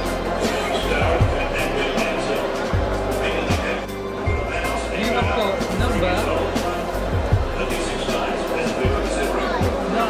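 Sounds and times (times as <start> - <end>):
music with thudding bass beat: 0.0 - 9.9
indistinct crowd voices: 0.0 - 10.0.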